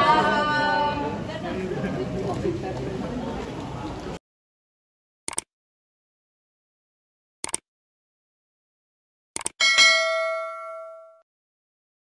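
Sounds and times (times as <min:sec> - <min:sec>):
bell-like chime: 0:09.6 - 0:11.3.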